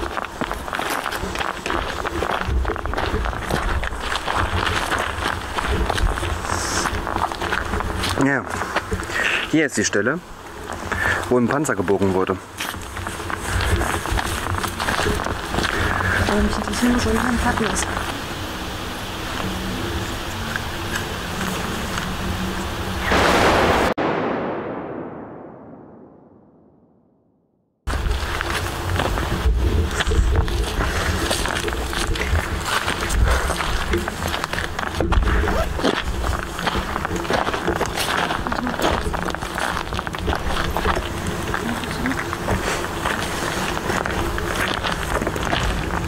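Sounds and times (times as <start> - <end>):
footsteps on cobblestones: 0.0 - 9.3, 11.9 - 18.3, 27.9 - 46.0
loud burst of noise: 22.2 - 27.2.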